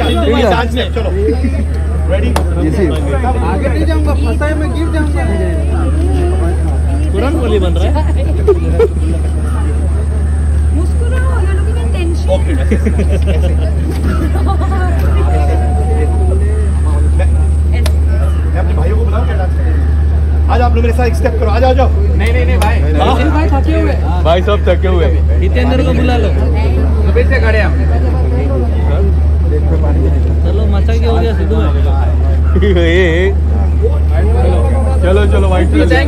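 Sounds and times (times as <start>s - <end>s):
low engine rumble: 0.0s - 36.0s
low machine drone: 0.0s - 36.0s
faint chatter of voices: 1.3s - 20.6s.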